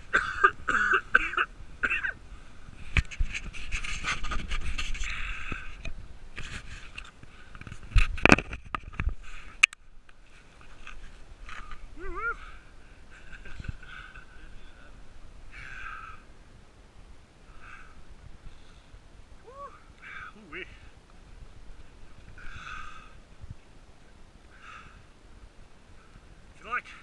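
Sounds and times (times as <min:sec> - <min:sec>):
sled runners scraping on snow: 0:02.8 - 0:05.2.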